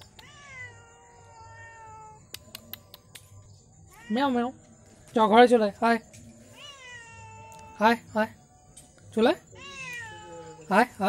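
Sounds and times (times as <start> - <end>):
cat meowing: 0.0 - 2.3, 6.5 - 7.8, 9.5 - 10.7.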